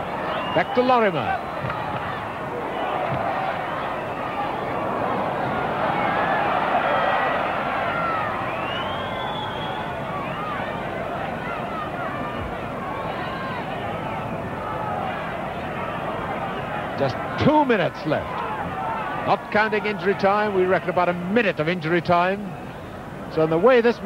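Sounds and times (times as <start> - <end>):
stadium crowd shouting: 0.0 - 24.0.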